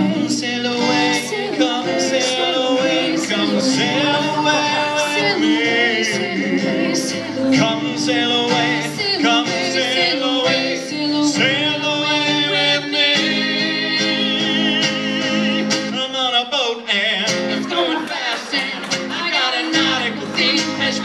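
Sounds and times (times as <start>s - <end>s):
man and woman singing: 0.0s - 21.0s
strummed acoustic guitar: 0.0s - 21.0s.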